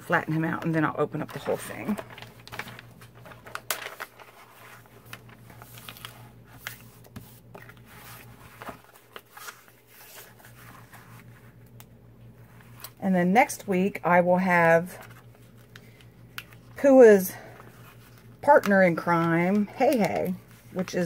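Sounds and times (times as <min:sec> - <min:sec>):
plastic film crinkling: 0:01.3 - 0:11.7.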